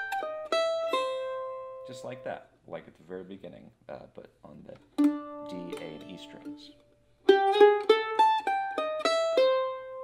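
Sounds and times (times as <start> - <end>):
mandolin picked notes: 0.0 - 2.6, 4.6 - 10.0.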